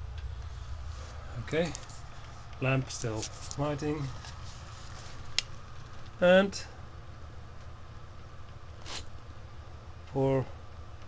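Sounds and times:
soft hiss: 0:00.1 - 0:06.8.

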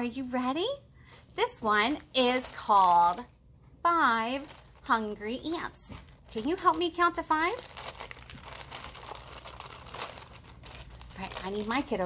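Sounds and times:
plastic bag crinkling: 0:01.4 - 0:03.4, 0:04.1 - 0:12.0.

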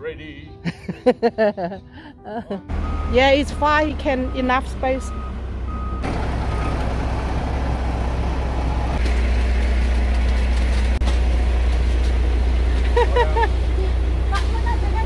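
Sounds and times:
diesel truck engine running: 0:02.0 - 0:15.0
reversing alarm beeping: 0:02.8 - 0:06.8.

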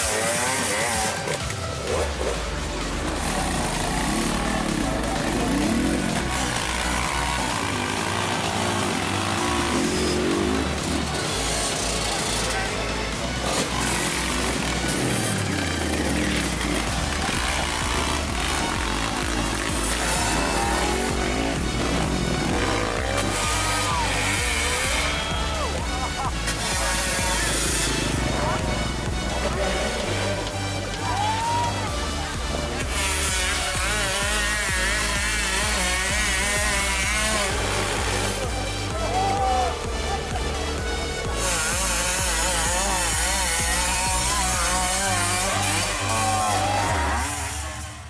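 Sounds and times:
background music with bass line: 0:00.0 - 0:48.0
dirt bike engines revving: 0:00.0 - 0:48.0
people's voices: 0:00.0 - 0:48.0.

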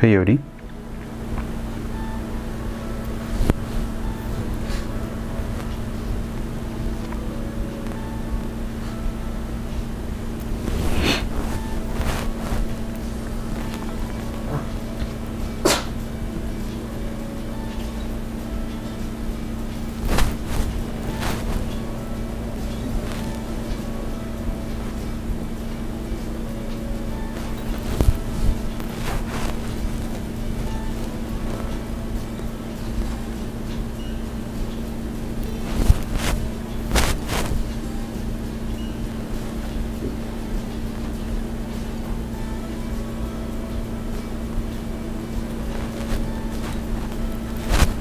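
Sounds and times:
low hum: 0:00.0 - 0:48.0.

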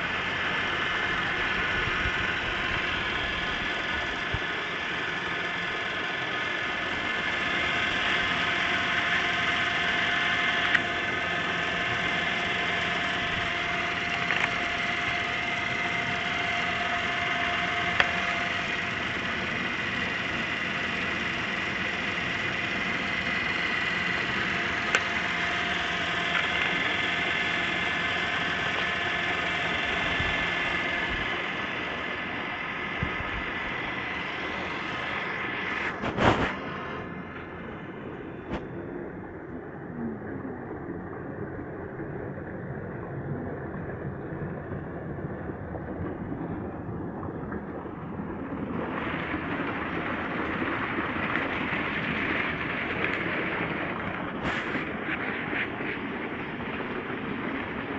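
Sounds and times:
water pump motor whine: 0:00.0 - 0:57.9.

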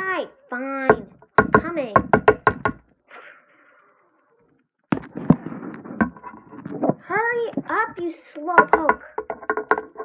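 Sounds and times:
plastic toy tapping on desk: 0:00.9 - 0:02.9, 0:08.5 - 0:10.0.

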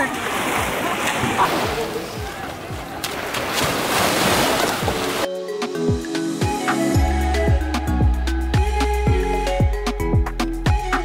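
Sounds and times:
small waves washing onto shore: 0:00.0 - 0:05.3.

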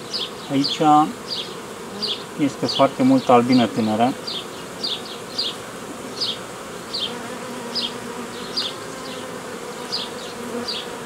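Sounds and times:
bee colony buzzing: 0:00.0 - 0:11.0.

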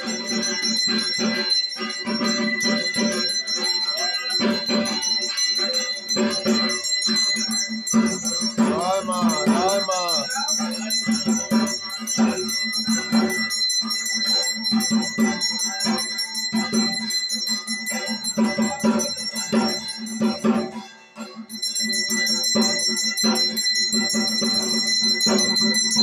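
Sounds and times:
hand bell ringing: 0:00.0 - 0:26.0
steady percussion beat: 0:00.0 - 0:26.0.

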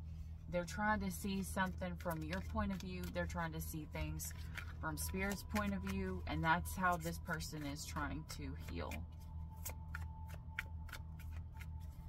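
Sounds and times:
low background hum: 0:00.0 - 0:12.0
cards being shuffled: 0:01.0 - 0:12.0.

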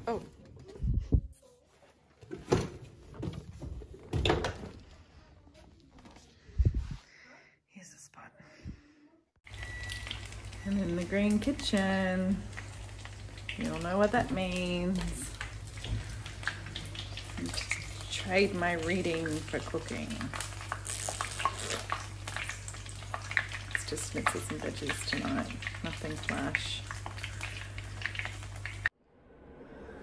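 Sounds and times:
vegetables sizzling in a pan: 0:09.5 - 0:28.9.

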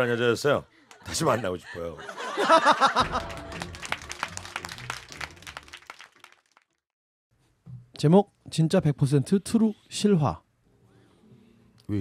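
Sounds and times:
low background music: 0:02.8 - 0:05.9
hand clapping: 0:03.0 - 0:06.8.

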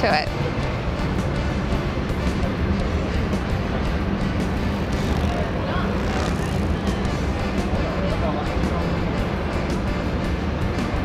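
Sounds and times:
motorcycle engines running: 0:00.0 - 0:11.0
music: 0:00.0 - 0:11.0.

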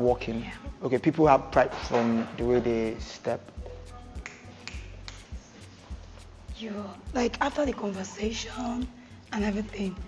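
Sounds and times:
background music with bass beat: 0:00.0 - 0:10.0.

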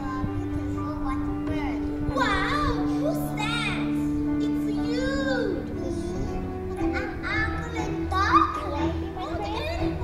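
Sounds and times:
background music: 0:00.0 - 0:10.0
child speaking: 0:00.0 - 0:10.0.

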